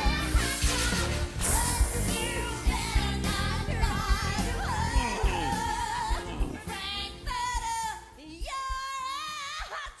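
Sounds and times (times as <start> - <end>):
person singing with vibrato: 0.0 - 8.0.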